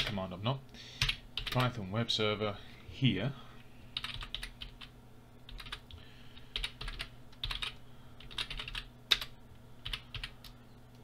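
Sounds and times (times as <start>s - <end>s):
faint low hum: 0.0s - 11.0s
keyboard typing: 4.0s - 4.9s, 5.5s - 5.9s, 6.5s - 11.0s.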